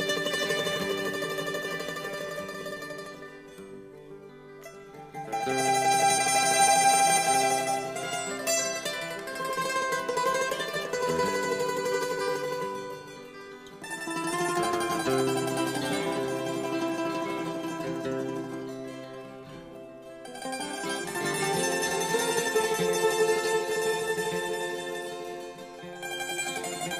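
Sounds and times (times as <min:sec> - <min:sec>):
folk music with plucked strings: 0:00.0 - 0:26.9.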